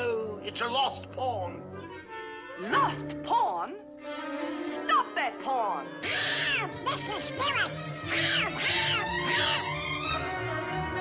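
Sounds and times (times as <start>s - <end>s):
orchestral cartoon music: 0.0s - 11.0s
cartoon duck squawking: 6.0s - 10.2s.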